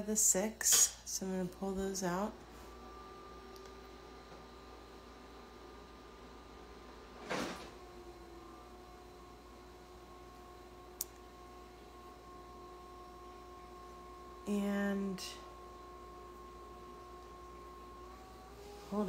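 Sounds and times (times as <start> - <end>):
ice machine humming: 0.0 - 19.0.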